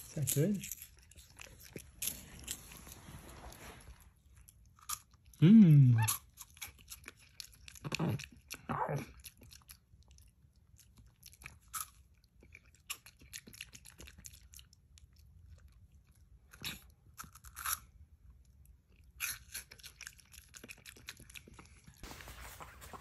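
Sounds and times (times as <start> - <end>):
crunchy snack chewing: 0.1 - 5.4, 6.0 - 18.0, 18.9 - 23.0.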